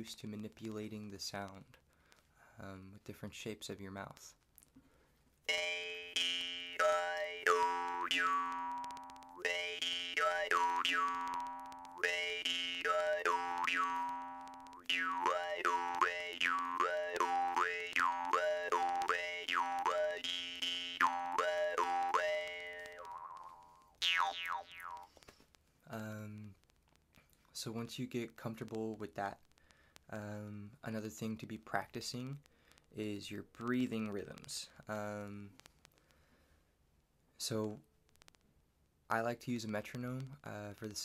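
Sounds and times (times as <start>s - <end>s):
jaw harp twanging: 5.5s - 25.1s.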